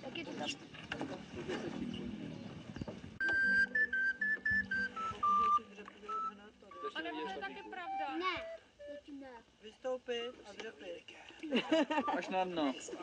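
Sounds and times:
recorder melody: 3.2 - 9.3, 11.9 - 12.4.

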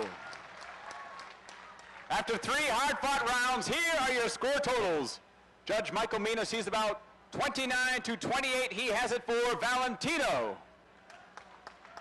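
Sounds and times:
audience applauding: 0.0 - 2.1, 11.1 - 12.0.

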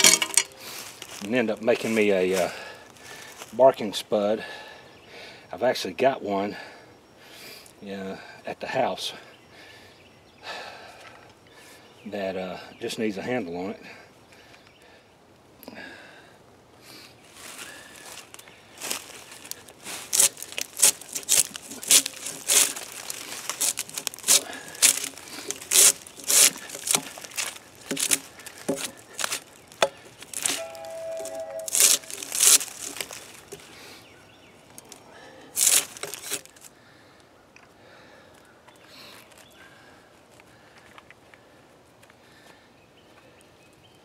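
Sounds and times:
draw knife scraping bark: 20.2 - 33.6, 35.6 - 36.6.

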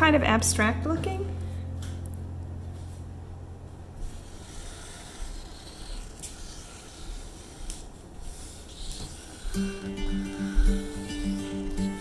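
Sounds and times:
low hum: 0.0 - 12.0
marker scratching on paper: 4.0 - 11.8.

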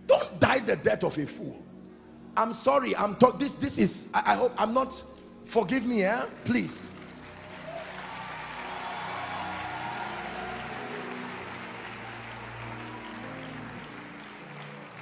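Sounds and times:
soft background music: 0.0 - 15.0
congregation applauding: 5.9 - 15.0.

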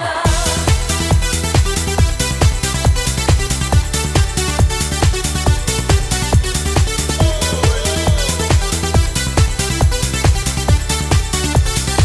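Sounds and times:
electronic dance music: 0.0 - 12.0
synth chords and bass: 0.2 - 12.0
steady kick drum: 0.3 - 12.0.

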